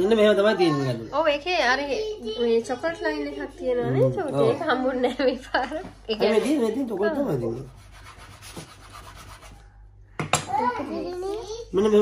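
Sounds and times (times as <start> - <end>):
knife sawing through cake: 6.9 - 9.6.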